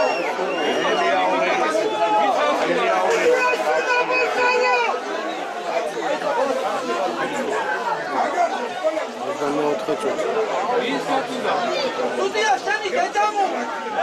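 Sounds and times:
voices talking over one another: 0.0s - 14.0s.

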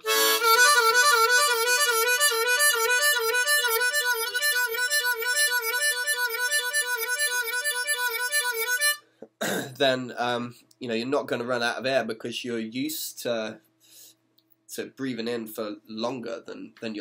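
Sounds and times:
harmonica playing fast lick: 0.0s - 9.0s.

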